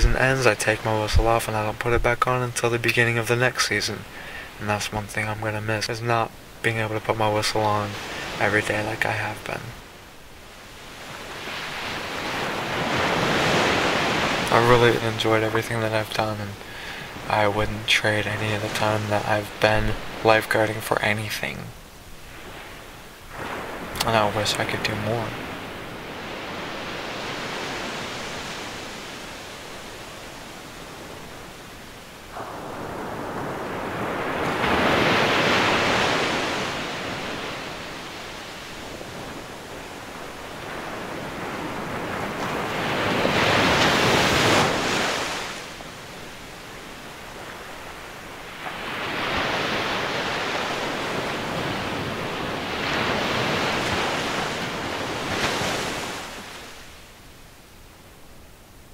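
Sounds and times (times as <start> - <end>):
waves breaking on beach: 0.0 - 58.5.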